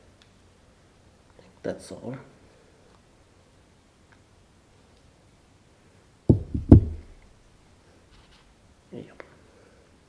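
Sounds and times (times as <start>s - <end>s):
deep knocks on a tabletop: 6.3s - 7.2s.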